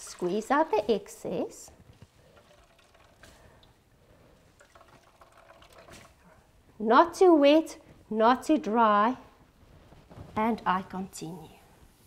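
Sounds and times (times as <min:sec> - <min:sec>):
faint water drips: 0:01.8 - 0:06.7.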